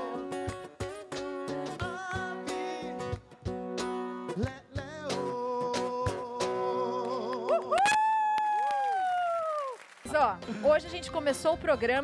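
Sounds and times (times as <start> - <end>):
strummed acoustic guitar: 0.0 - 7.0
man singing: 1.2 - 7.8.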